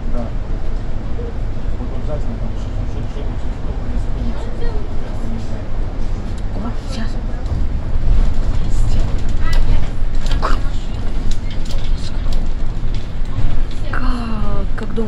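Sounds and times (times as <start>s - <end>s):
bus engine rumbling: 0.0s - 15.0s
rattles and clicks: 7.3s - 15.0s.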